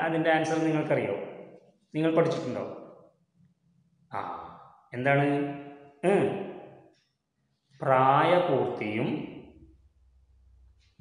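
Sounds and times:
man speaking: 0.0 - 1.2, 2.0 - 2.7, 4.1 - 6.4, 7.8 - 9.2.

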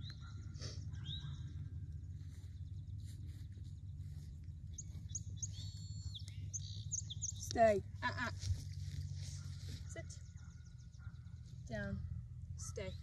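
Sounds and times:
birds chirping: 0.0 - 13.0
steady low rumble: 0.0 - 13.0.

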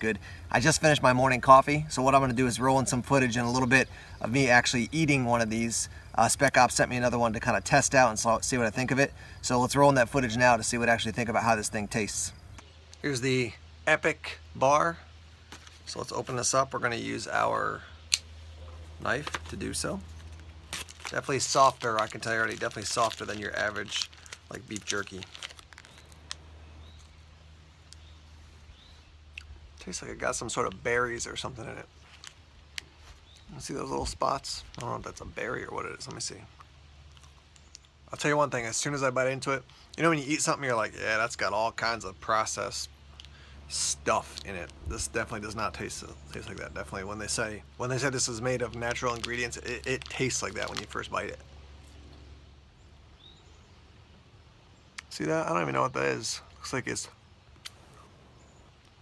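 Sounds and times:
bird chirp: 25.8 - 29.4, 33.0 - 33.8, 50.8 - 59.0.

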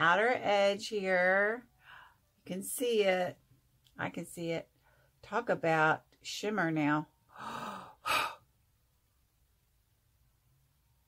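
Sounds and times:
short sharp breath: 1.8 - 2.2
woman's breathy sigh: 7.3 - 8.4.

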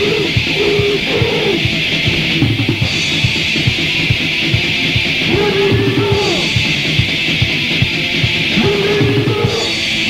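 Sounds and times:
distorted guitar: 0.0 - 10.0
fast drumming: 0.0 - 10.0.

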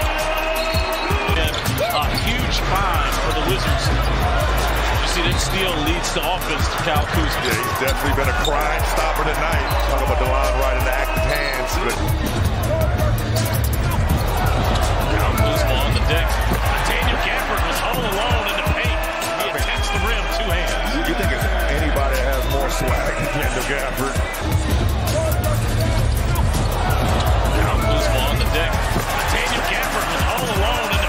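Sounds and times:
arena crowd noise: 0.0 - 31.0
music: 0.0 - 31.0.

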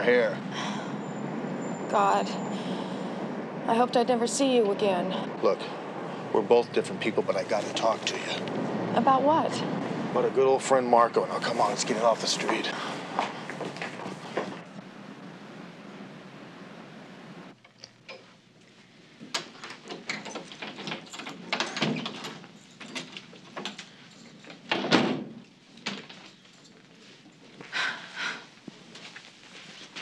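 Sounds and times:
steady background hiss: 0.0 - 30.0
knocks and footsteps: 11.6 - 14.8
door shutting: 19.3 - 23.8, 24.5 - 26.2
door opening: 19.3 - 26.4.

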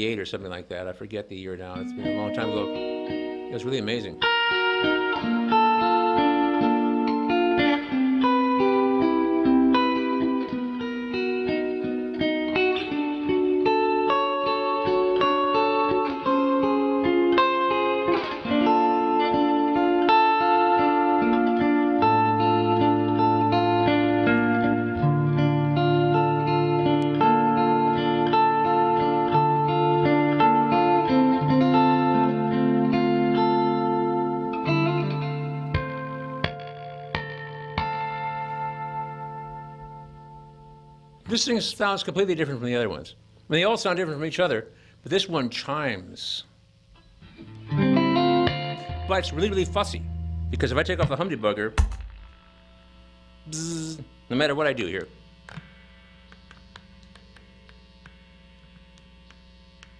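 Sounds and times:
clean electric guitar melody: 1.6 - 41.4, 46.8 - 59.9
bass notes: 47.0 - 54.3.

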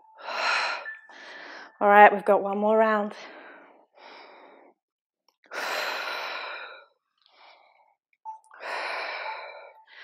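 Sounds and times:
woman breathing hard: 0.0 - 1.8, 3.2 - 4.8, 5.5 - 8.0, 8.6 - 10.0.

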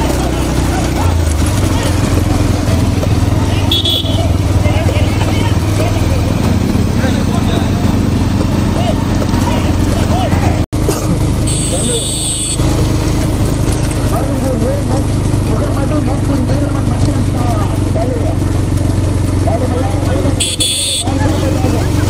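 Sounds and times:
men shouting: 0.0 - 10.6
motorcycle engines running: 0.0 - 22.0.

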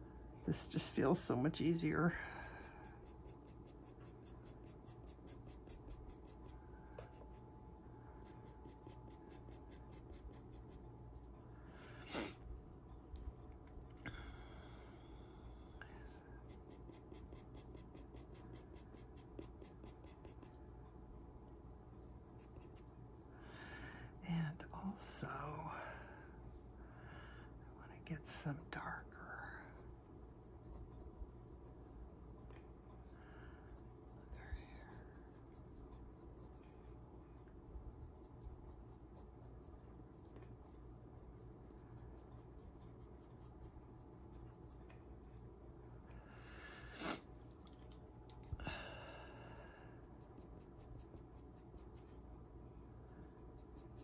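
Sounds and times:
pastel pencil scratching on paper: 2.5 - 7.4, 8.1 - 11.3, 15.9 - 20.6, 22.4 - 23.0, 29.5 - 36.8, 37.9 - 45.0, 50.0 - 52.3, 53.2 - 54.0.

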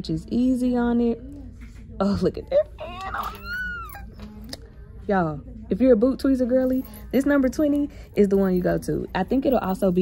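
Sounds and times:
woman squealing: 2.8 - 4.1.

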